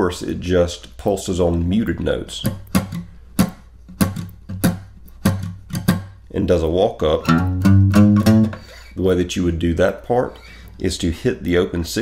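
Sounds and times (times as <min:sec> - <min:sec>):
acoustic guitar muted strumming: 0:02.5 - 0:06.2, 0:07.2 - 0:08.8
low note: 0:07.2 - 0:08.6.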